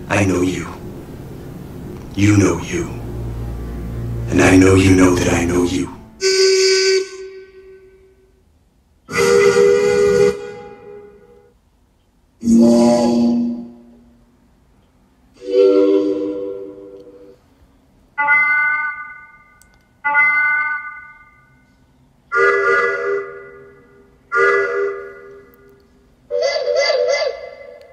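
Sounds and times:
boat horns blasting: 0:00.0 - 0:08.4, 0:09.1 - 0:11.5, 0:15.4 - 0:17.3, 0:22.3 - 0:27.9.

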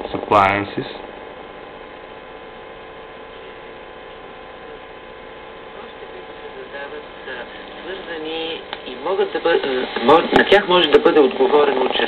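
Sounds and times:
electrical hum and hiss: 0:00.0 - 0:12.0
faint radio voices: 0:03.2 - 0:12.0.

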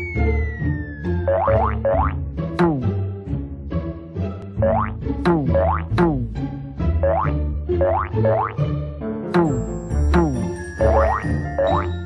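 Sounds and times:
cartoon boing twangs: 0:01.2 - 0:02.8, 0:04.6 - 0:06.2, 0:07.0 - 0:08.6, 0:10.2 - 0:11.9.

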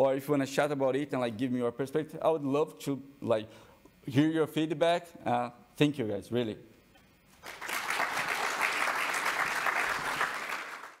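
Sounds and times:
audience applauding: 0:07.4 - 0:11.0.

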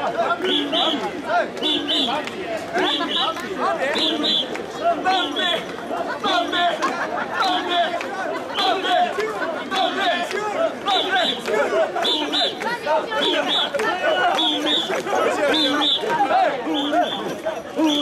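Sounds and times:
crowd chanting in rhythm: 0:00.0 - 0:18.0.

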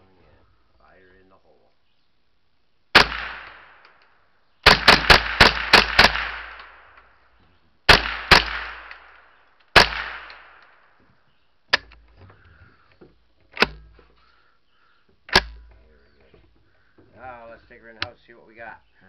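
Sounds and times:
rifle shots with echo: 0:02.9 - 0:04.0, 0:04.6 - 0:07.2, 0:07.9 - 0:11.0.

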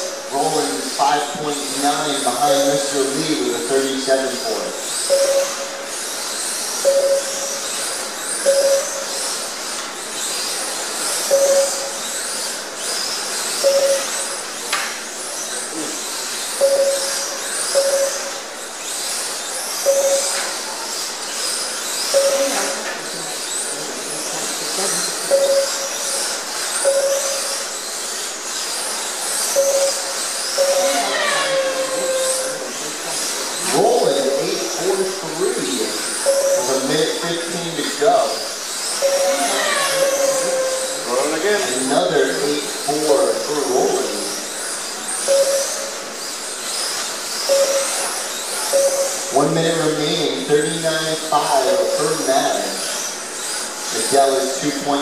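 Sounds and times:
electric toy car motors whining: 0:00.0 - 0:55.0
short beeps: 0:05.1 - 0:05.9, 0:06.8 - 0:07.6, 0:08.5 - 0:09.2, 0:11.3 - 0:12.1, 0:13.6 - 0:14.3, 0:16.6 - 0:18.4, 0:19.9 - 0:20.5, 0:22.2 - 0:22.9, 0:25.3 - 0:26.0, 0:26.8 - 0:27.6, 0:29.6 - 0:32.8, 0:36.2 - 0:36.9, 0:39.0 - 0:41.4, 0:45.3 - 0:46.0, 0:47.5 - 0:48.1, 0:48.7 - 0:49.4.

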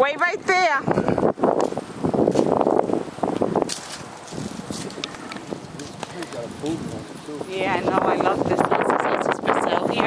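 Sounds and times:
wind buffeting microphone: 0:00.0 - 0:10.0
sharp crackle: 0:01.6 - 0:08.6.

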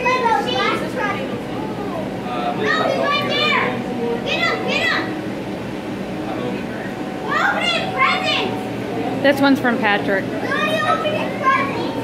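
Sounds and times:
children calling out: 0:00.0 - 0:05.8, 0:07.2 - 0:09.1, 0:10.2 - 0:12.0
crowd babble indoors: 0:00.0 - 0:12.0.

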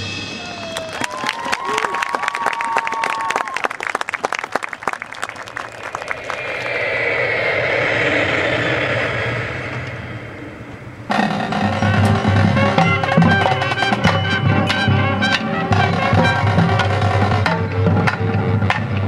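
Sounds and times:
audience applause: 0:00.6 - 0:07.0.

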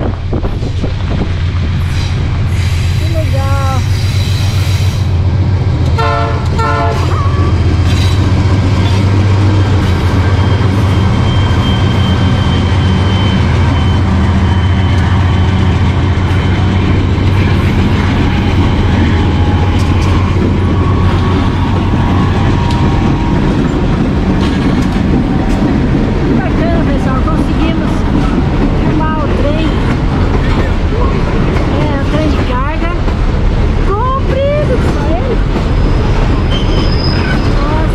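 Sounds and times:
locomotive deep drone: 0:00.0 - 0:37.9
train wheel noise: 0:00.0 - 0:37.9
wheel squeals: 0:09.8 - 0:16.6, 0:35.7 - 0:37.9.

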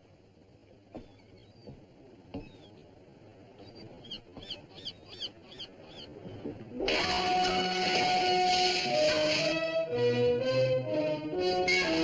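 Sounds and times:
faint knocks: 0:00.9 - 0:02.9, 0:04.1 - 0:04.8
bird chirping: 0:01.0 - 0:02.8, 0:03.6 - 0:06.2
loud music: 0:06.9 - 0:12.0.

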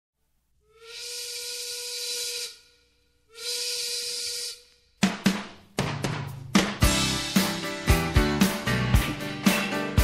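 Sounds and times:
steam whistle blasts: 0:00.6 - 0:04.8.

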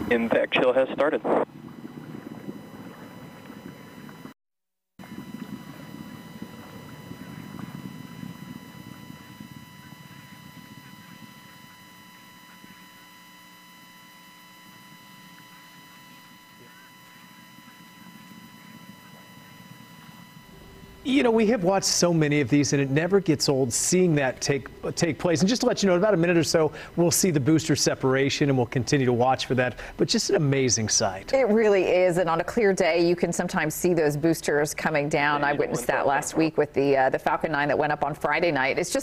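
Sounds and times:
steady electronic whines: 0:00.0 - 0:04.4, 0:05.0 - 0:39.0.

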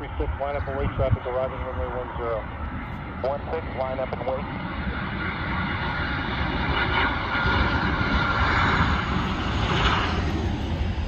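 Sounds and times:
jet engine whine over rumble: 0:00.0 - 0:11.0.

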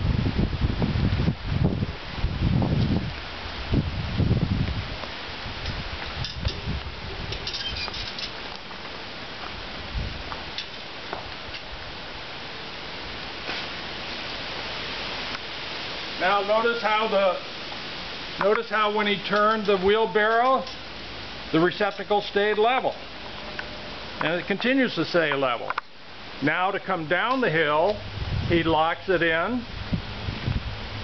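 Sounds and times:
wind gusts on microphone: 0:00.0 - 0:20.3, 0:27.1 - 0:31.0
steady hiss: 0:00.0 - 0:31.0.

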